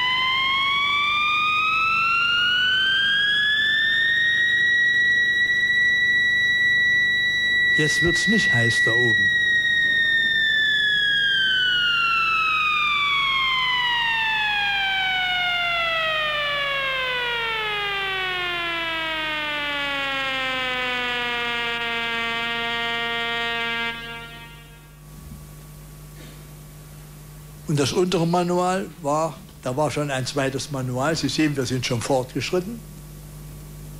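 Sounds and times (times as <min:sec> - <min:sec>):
electronic tone sliding down in pitch: 0:00.0 - 0:25.0.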